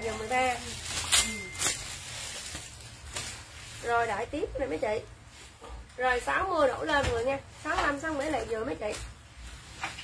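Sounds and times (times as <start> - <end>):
woman speaking: 0.0 - 1.7, 3.8 - 5.2, 5.9 - 9.1
plastic bag crinkling: 0.0 - 5.0.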